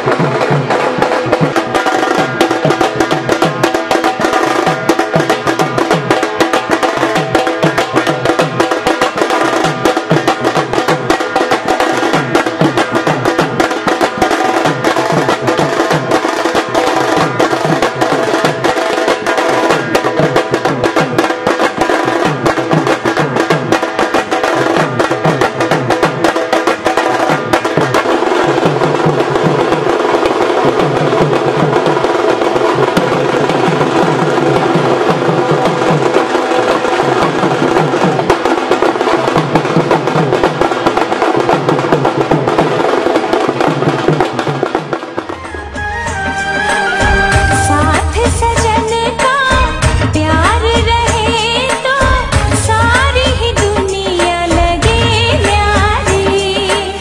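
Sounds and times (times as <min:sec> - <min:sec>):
drums played fast: 0:00.0 - 0:57.0
sustained melodic tones: 0:45.4 - 0:48.5.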